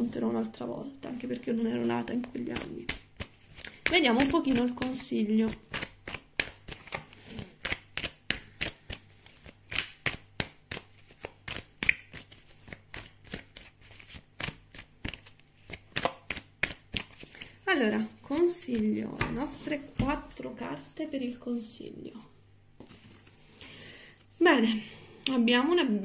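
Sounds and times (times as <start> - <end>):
cards being shuffled: 1.1 - 20.3, 22.8 - 23.6.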